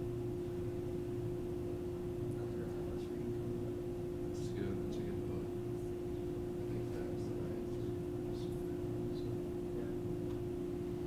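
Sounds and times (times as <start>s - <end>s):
constant mid-pitched tone: 0.0s - 11.0s.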